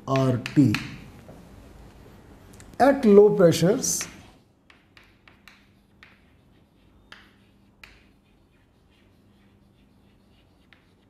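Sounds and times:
chalk tap: 0.1s - 1.1s, 3.9s - 11.0s
chalk scratching on chalkboard: 3.9s - 11.0s.

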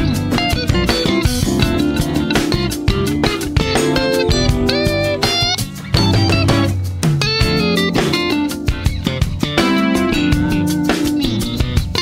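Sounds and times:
guitar with bent notes: 0.0s - 12.0s
soul-jazz funk band playing: 0.0s - 12.0s.

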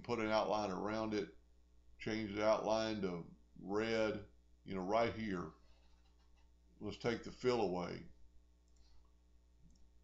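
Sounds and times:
faint computer mouse clicks: 8.6s - 9.9s.

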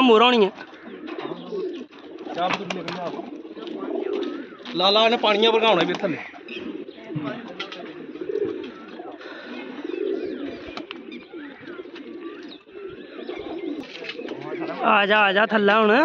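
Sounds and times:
pigeons cooing: 0.0s - 15.3s.

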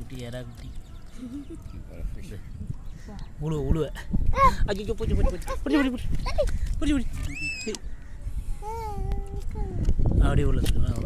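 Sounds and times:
children calling and talking: 0.8s - 10.2s.

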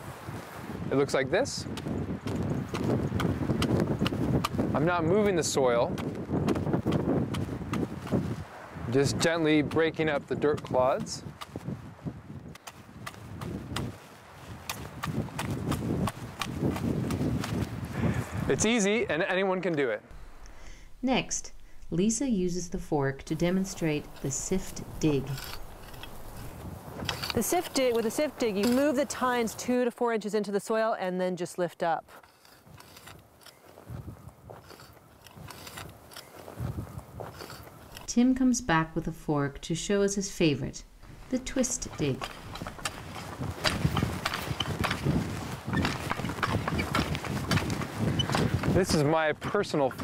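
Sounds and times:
soil crunching under fork: 12.5s - 18.8s, 19.7s - 29.7s, 32.1s - 39.1s, 41.0s - 49.0s
low thumps: 20.1s - 28.8s, 38.0s - 48.7s
metal rake chopping into soil: 20.2s - 29.3s, 41.1s - 45.0s.

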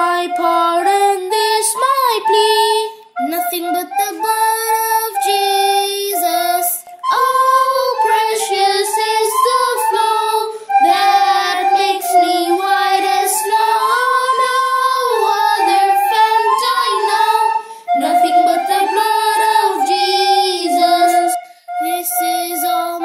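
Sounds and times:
children singing a hymn: 0.0s - 2.9s, 3.5s - 23.0s.

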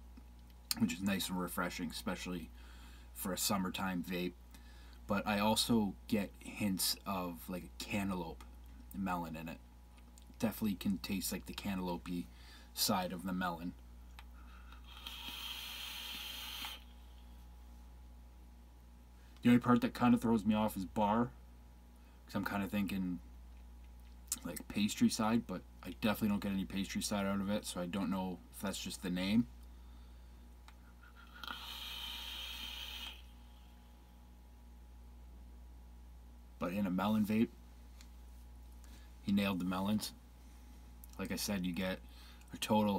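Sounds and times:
airy hiss of e-cigarette drag: 14.8s - 17.0s, 31.2s - 33.4s.

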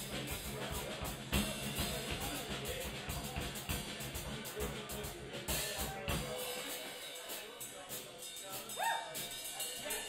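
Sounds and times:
live band playing softly: 0.0s - 10.0s
short high yelp: 8.8s - 9.2s.

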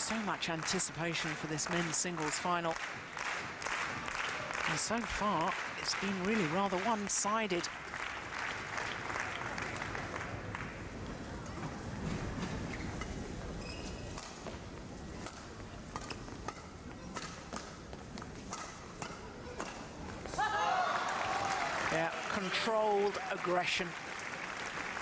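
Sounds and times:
crowd applause: 0.0s - 6.8s, 7.6s - 10.9s, 20.5s - 25.0s
racket striking shuttlecock: 15.2s - 19.9s.

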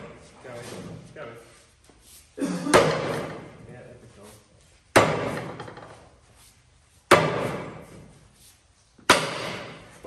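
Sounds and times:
rubber mallet striking wooden plank: 4.9s - 5.8s, 7.1s - 7.8s, 9.1s - 9.8s.

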